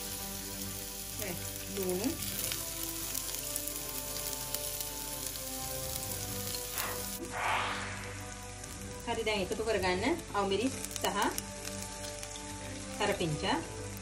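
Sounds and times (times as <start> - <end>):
onions sizzling in oil: 0.0 - 14.0.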